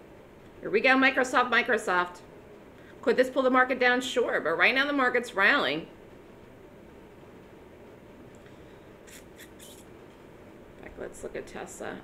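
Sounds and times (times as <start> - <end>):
steady low background hiss: 0.0 - 12.0
brief soft hissy sounds: 9.0 - 9.9.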